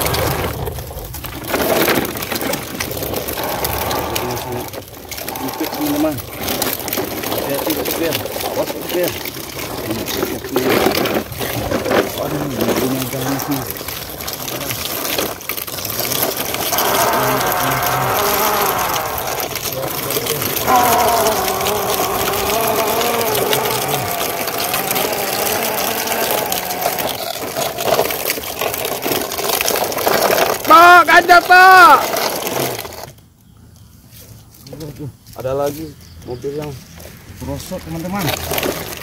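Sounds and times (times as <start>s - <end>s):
steady rough noise: 0.0s - 33.2s
long wavering vocal sounds: 3.2s - 6.3s, 16.6s - 27.9s.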